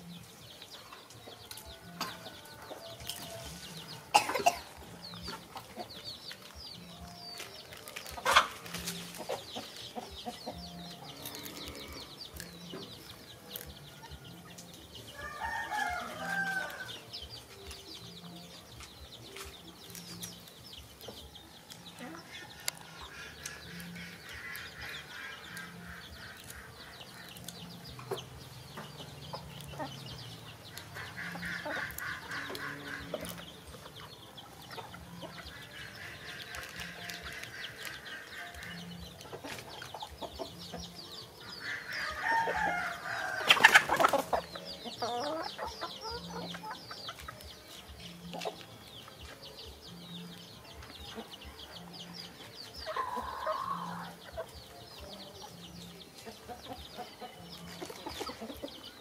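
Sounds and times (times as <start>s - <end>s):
birds calling: 0.0s - 59.0s.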